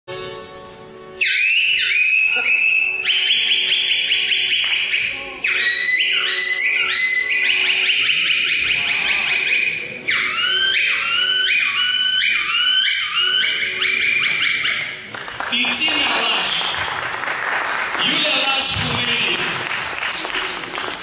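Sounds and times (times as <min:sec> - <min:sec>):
high folk melody with vibrato: 0:00.1 - 0:15.1.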